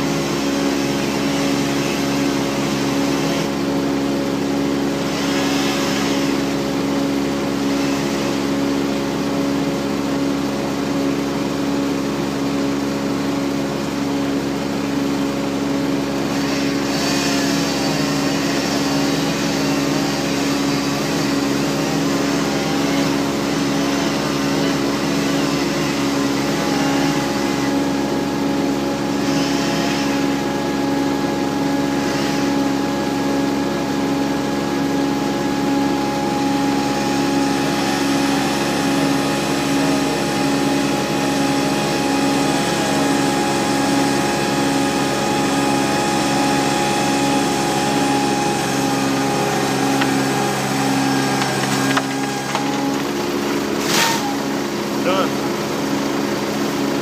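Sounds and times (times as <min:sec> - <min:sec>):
diesel engine running: 0:00.0 - 0:57.0.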